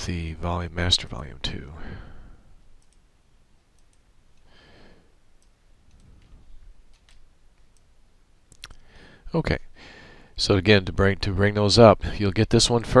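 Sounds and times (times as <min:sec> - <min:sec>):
soft breath: 0:01.8 - 0:02.6, 0:04.5 - 0:05.2, 0:08.8 - 0:10.4
computer mouse clicks: 0:02.8 - 0:03.0, 0:03.7 - 0:04.5, 0:05.4 - 0:07.9.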